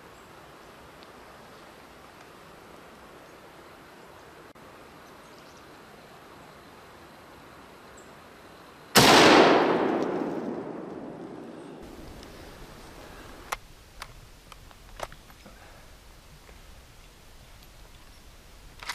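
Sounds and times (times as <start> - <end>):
faint outdoor hush: 0.0 - 18.9
rifle shot echoing: 9.0 - 12.1.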